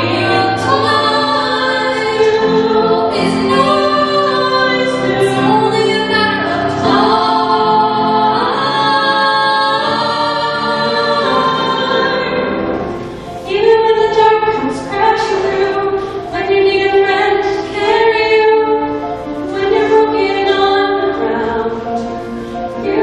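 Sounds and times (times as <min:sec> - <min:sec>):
two women singing a duet: 0:00.0 - 0:23.0.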